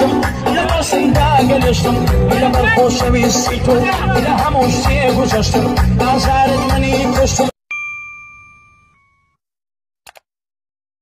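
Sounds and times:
background music: 0.0s - 7.5s
bright bell ding: 7.7s - 9.4s.

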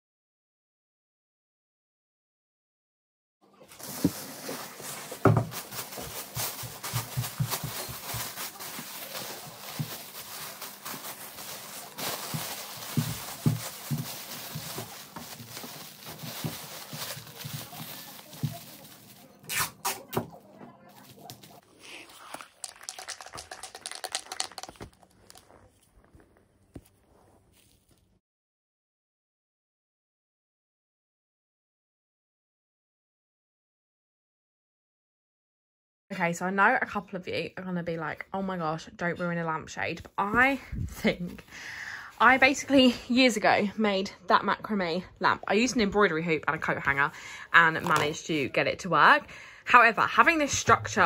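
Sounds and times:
plastic bag crinkling: 3.7s - 19.8s, 21.0s - 28.1s, 47.7s - 48.3s.

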